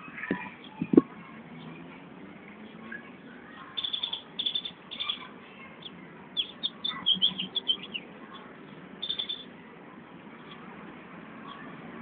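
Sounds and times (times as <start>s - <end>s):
outdoor background noise: 0.0s - 12.0s
small birds chirping: 0.0s - 12.0s.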